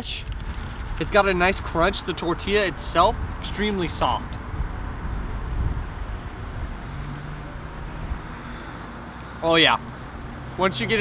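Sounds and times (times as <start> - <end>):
vehicle traffic rumble: 0.0 - 11.0
low engine hum: 0.3 - 11.0.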